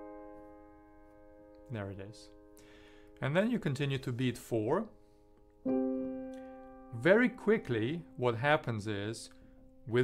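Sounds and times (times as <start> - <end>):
piano chord: 0.0 - 10.0.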